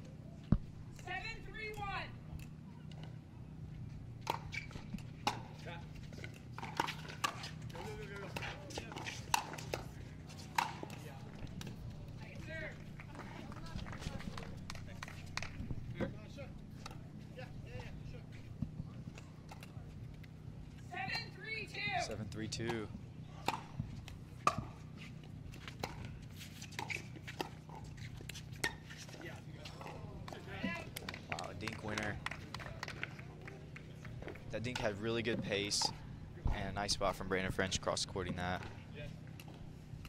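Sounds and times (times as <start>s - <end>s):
paddles striking pickleball: 4.2s - 16.2s, 23.4s - 24.8s, 25.5s - 36.6s.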